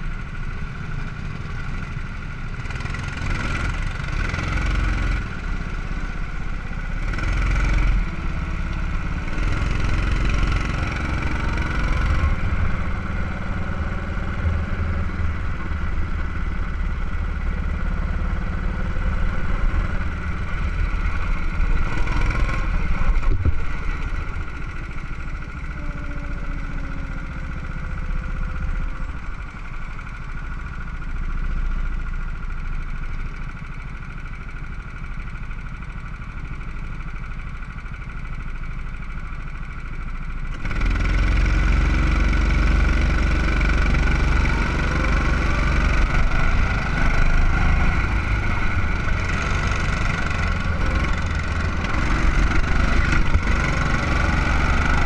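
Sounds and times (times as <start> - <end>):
go-kart engines droning: 0.0 - 55.0.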